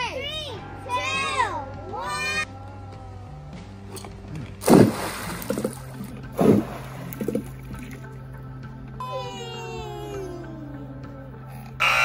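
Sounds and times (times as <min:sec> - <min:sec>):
background music: 0:00.0 - 0:12.0
golf balls splashing into water: 0:04.0 - 0:08.4.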